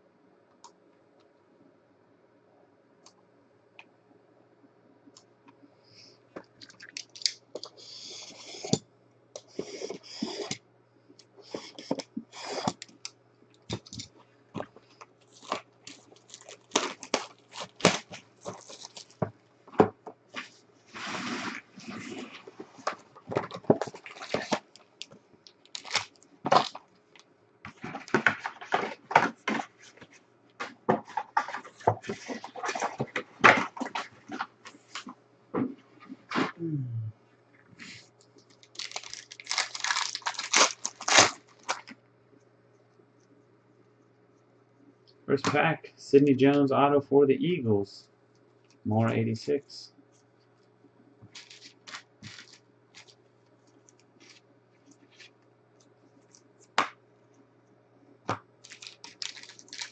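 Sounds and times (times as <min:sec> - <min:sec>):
steady low hum: 0:00.0 - 0:59.9
foil packs rustling and crinkling: 0:13.7 - 0:19.8, 0:20.4 - 0:35.2, 0:38.4 - 0:42.0, 0:51.3 - 0:53.2, 0:58.6 - 0:59.9.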